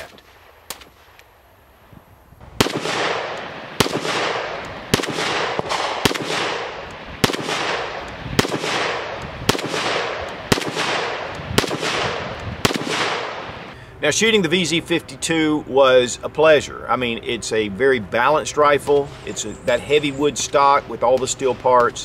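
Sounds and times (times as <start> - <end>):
rifle shots with echo: 2.6 - 13.7.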